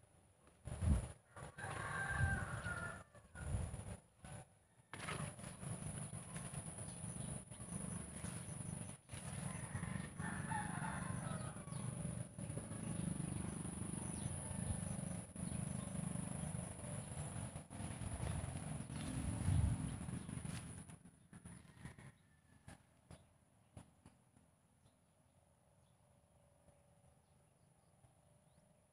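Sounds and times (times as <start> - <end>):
rooster crowing: 1.2 - 3.6, 9.3 - 12.0, 21.6 - 22.8.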